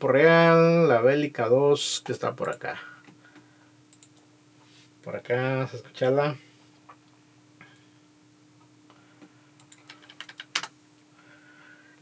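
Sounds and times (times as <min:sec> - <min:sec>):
faint steady hum: 0:00.0 - 0:12.0
computer mouse clicks: 0:03.9 - 0:04.2, 0:09.6 - 0:10.7.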